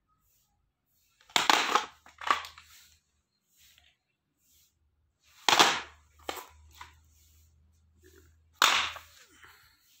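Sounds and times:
plastic cassette cases clattering: 1.3 - 2.6.

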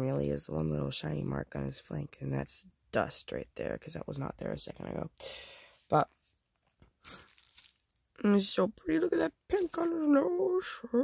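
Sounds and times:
bubble wrap crinkling: 6.6 - 8.2.

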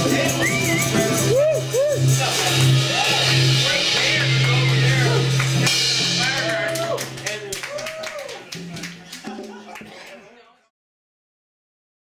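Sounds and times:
small group clapping: 3.1 - 10.6.

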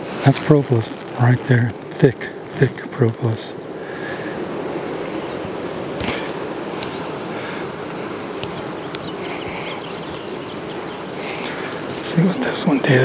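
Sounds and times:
bees humming in flight: 0.0 - 13.0.

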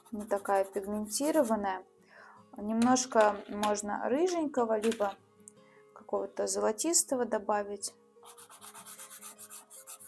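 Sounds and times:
pastel pencil rubbing on paper: 0.0 - 1.6, 8.2 - 10.0.

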